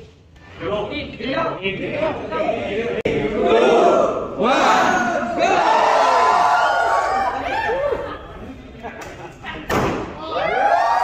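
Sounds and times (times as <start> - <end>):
crowd shouting and cheering: 2.6 - 8.4, 10.1 - 11.0
confetti cannon bang: 9.7 - 10.2.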